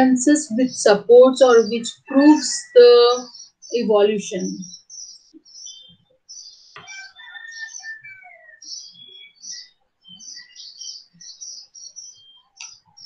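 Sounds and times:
birds chirping: 0:00.0 - 0:13.0.

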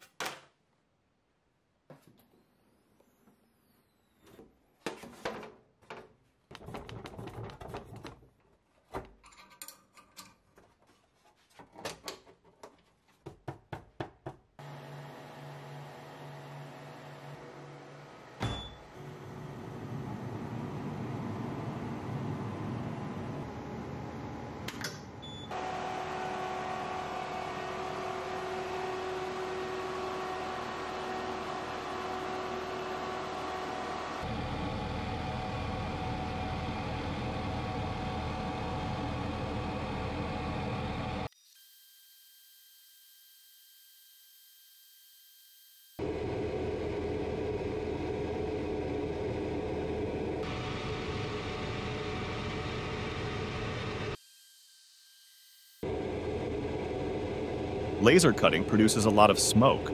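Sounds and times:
laser cutter whirring: 0:55.8 - 0:59.9.

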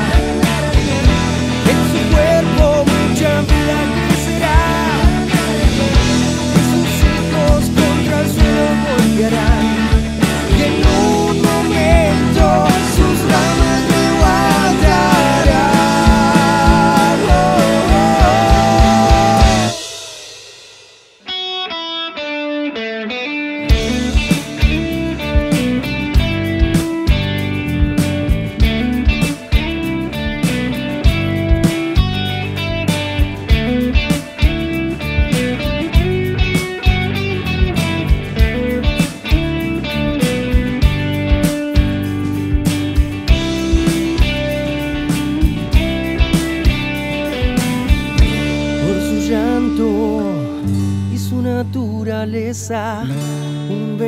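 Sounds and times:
picked guitar notes: 0:00.0 - 0:20.4, 0:21.2 - 0:54.0
rock band playing: 0:00.0 - 0:52.2.

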